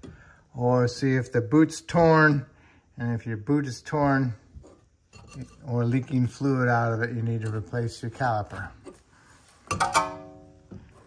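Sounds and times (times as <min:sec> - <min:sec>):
metal clank with ringing: 0:09.7 - 0:10.6.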